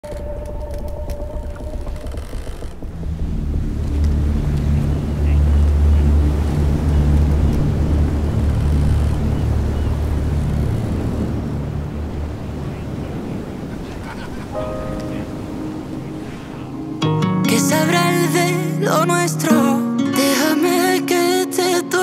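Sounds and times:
low droning rumble: 0:00.0 - 0:13.7.

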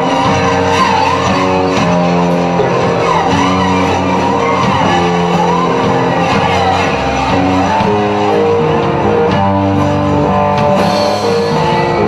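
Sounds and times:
electric guitar chords: 0:00.0 - 0:12.0.

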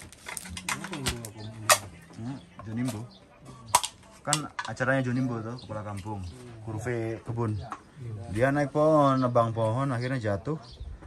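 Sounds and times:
plastic bags crinkling: 0:00.0 - 0:01.8.

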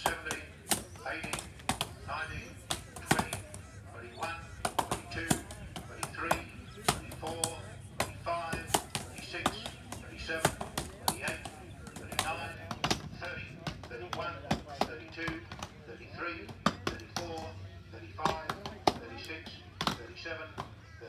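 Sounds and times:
axes chopping logs: 0:00.0 - 0:15.7, 0:19.8 - 0:20.0
voices calling out: 0:00.0 - 0:21.0.

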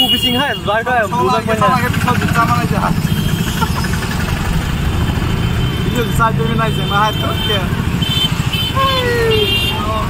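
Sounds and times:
rickshaw engine rumbling: 0:00.0 - 0:10.0
street traffic: 0:00.0 - 0:10.0.

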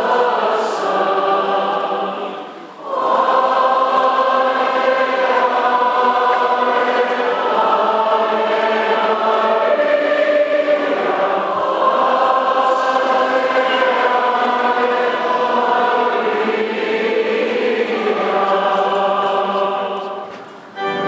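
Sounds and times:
choir singing sustained notes: 0:00.0 - 0:21.0.

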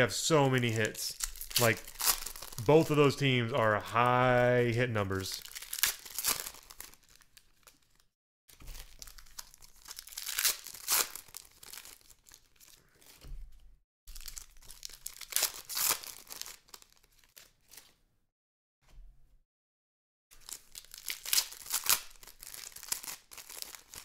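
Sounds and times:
foil wrappers tearing and crinkling: 0:00.5 - 0:03.2, 0:05.1 - 0:13.2, 0:14.1 - 0:17.9, 0:20.4 - 0:24.0.

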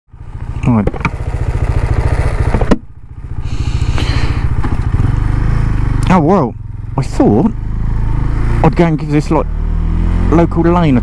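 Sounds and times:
motorcycle engine idling: 0:00.1 - 0:09.3.

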